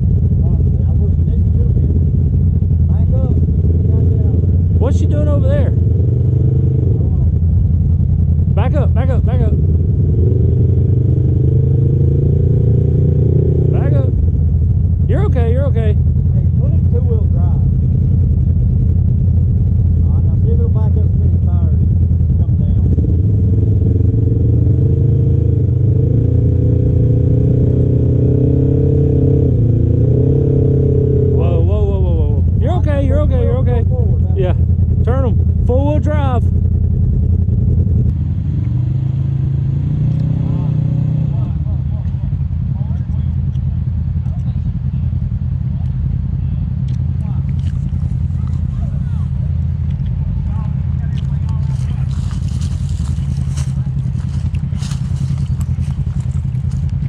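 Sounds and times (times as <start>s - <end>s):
engine revving: 0.0s - 43.3s, 45.8s - 57.0s.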